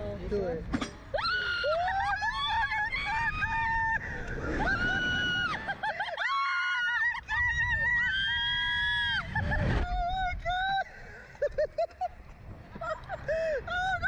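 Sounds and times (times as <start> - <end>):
women screaming: 1.1 - 10.8
wind rumble on microphone: 1.2 - 6.0, 6.9 - 14.0.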